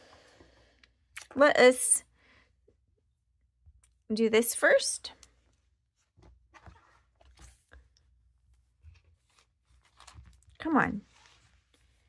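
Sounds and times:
planner shifted across desk: 6.2s - 7.8s.

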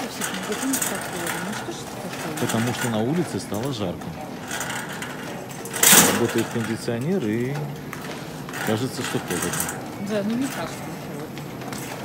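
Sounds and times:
supermarket background noise: 0.0s - 12.0s.

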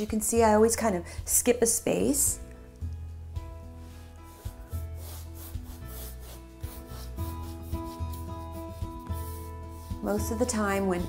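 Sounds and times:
soft background music: 0.0s - 11.0s
paintbrush rubbing on canvas: 3.8s - 11.0s.

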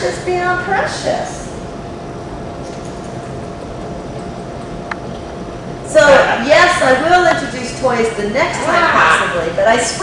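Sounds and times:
machinery hum and hiss: 0.0s - 10.0s.

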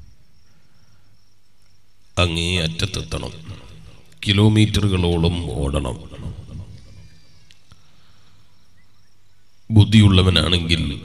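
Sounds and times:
cricket trilling: 0.0s - 11.0s
low steady hum: 0.0s - 11.0s.

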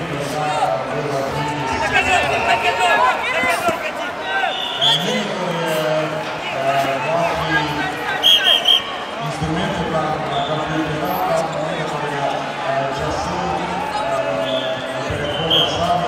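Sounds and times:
crowd chatter in sports hall: 0.0s - 16.0s
referee's whistle blasts: 4.4s - 5.2s, 8.1s - 9.0s, 14.4s - 16.0s.

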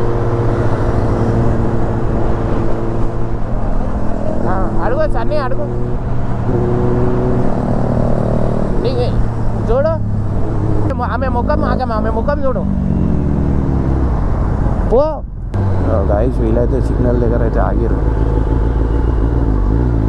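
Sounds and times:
motorcycle engine at low revs: 15.4s - 20.0s.

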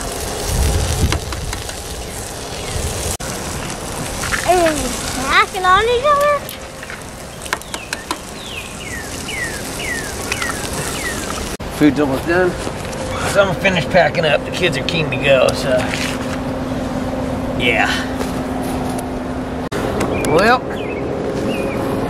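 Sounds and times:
food sizzling on griddle: 0.0s - 16.2s
bird whistling falling notes: 7.6s - 11.4s.

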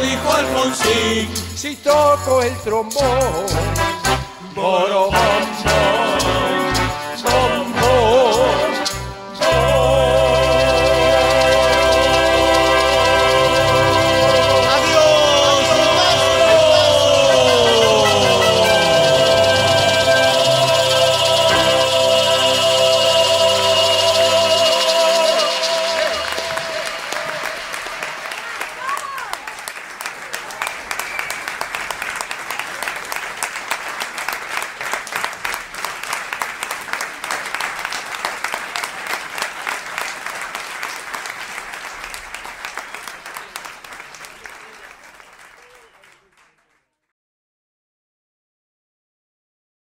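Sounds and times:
song ending on held chord: 9.4s - 27.8s
audience applauding: 10.4s - 47.0s.

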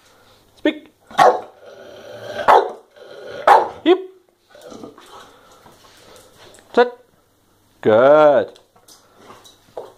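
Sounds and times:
dog barking: 1.1s - 1.6s, 2.4s - 2.8s, 3.4s - 3.8s.

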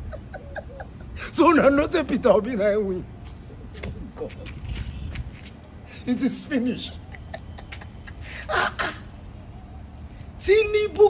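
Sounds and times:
man laughing: 0.0s - 1.8s, 3.8s - 4.7s, 6.0s - 9.1s
low outdoor rumble: 0.0s - 11.0s.

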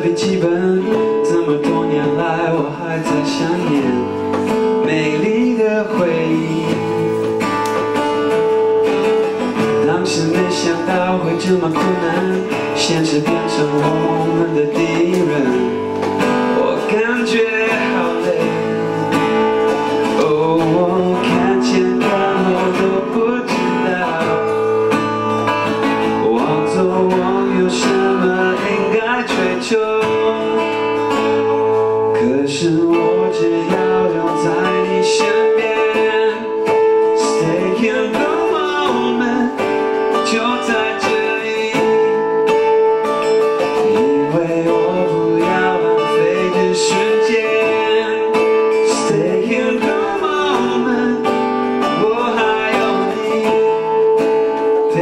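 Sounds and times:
person singing: 0.0s - 55.0s
strummed acoustic guitar: 0.0s - 55.0s.

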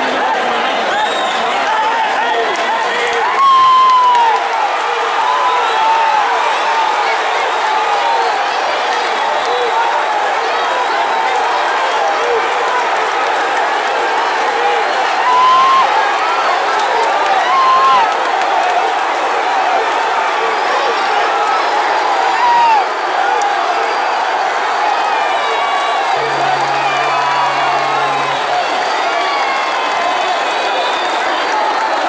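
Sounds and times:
arena crowd cheering and shouting: 0.0s - 32.0s
low steady tone: 26.2s - 28.7s.

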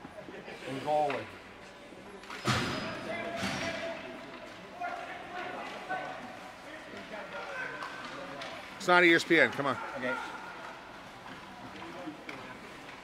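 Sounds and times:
hockey sticks knocking puck: 6.8s - 9.7s, 10.4s - 13.0s.

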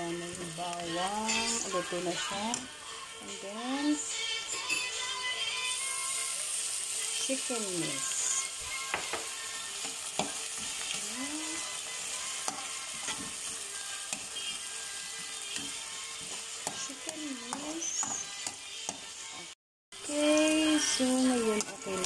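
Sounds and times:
meat sizzling in hot oil: 0.0s - 22.0s.

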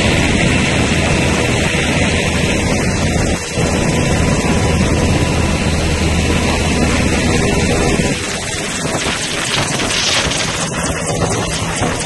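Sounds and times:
helicopter running: 0.0s - 12.0s
rotor wash buffeting microphone: 0.0s - 12.0s.

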